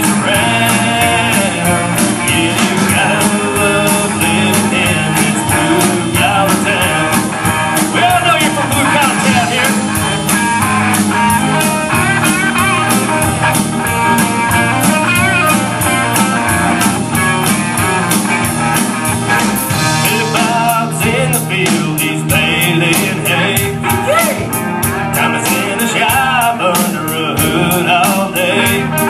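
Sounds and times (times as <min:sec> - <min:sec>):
acoustic and electric guitars: 0:00.0 - 0:29.0
drum kit steady beat: 0:00.0 - 0:29.0.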